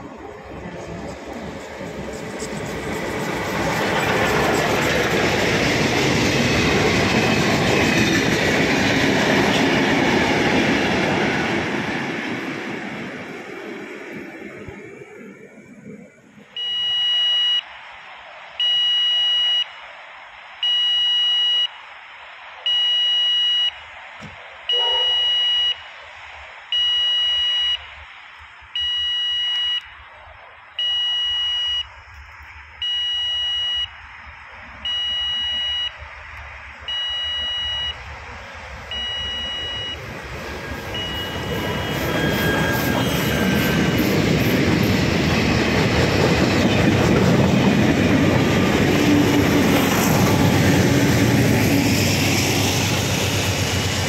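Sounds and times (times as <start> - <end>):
diesel train rumble and rail noise: 0.0 - 18.8, 21.5 - 54.0
electronic warning beep: 16.6 - 17.7, 18.6 - 19.8, 20.6 - 21.8, 22.7 - 23.8, 24.7 - 25.9, 26.7 - 28.0, 28.7 - 30.0, 30.8 - 32.1, 32.8 - 36.1, 36.8 - 38.1, 38.8 - 44.0.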